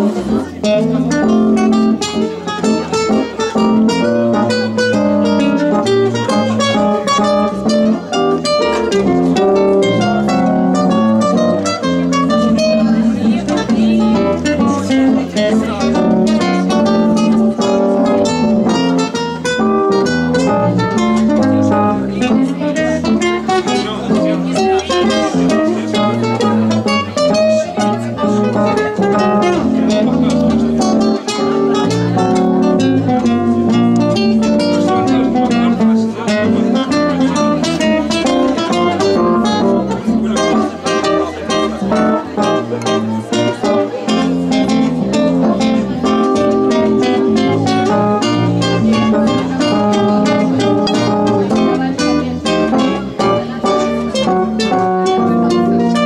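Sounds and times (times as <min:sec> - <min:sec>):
keyboard chords: 0:00.0 - 0:56.0
plucked acoustic guitar: 0:00.0 - 0:56.0.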